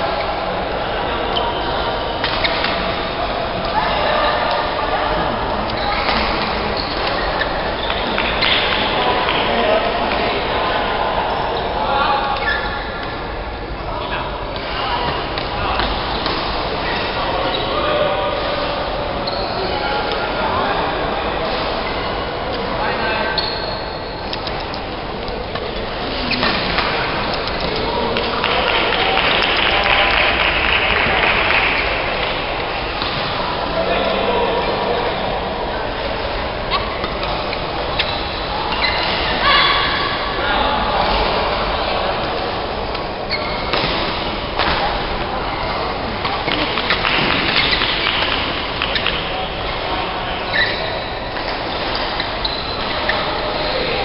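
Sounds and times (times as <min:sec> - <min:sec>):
indistinct chatter: 0:00.0 - 0:54.0.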